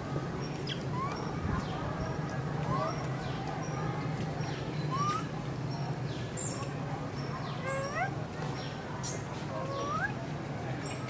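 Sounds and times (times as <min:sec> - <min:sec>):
macaque squeaky calls: 0:00.6 - 0:01.2, 0:04.9 - 0:05.3, 0:07.6 - 0:08.2, 0:09.7 - 0:10.2.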